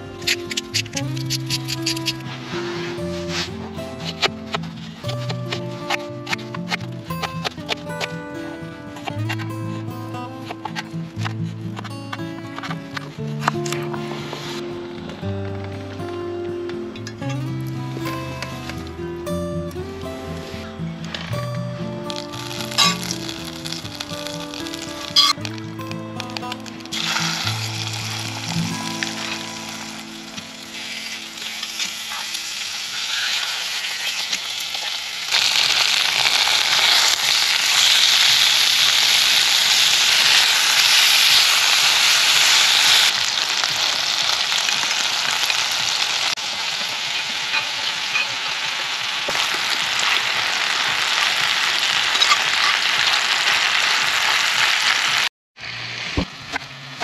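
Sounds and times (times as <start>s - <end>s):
chicken sizzling in butter: 22.1s - 56.1s.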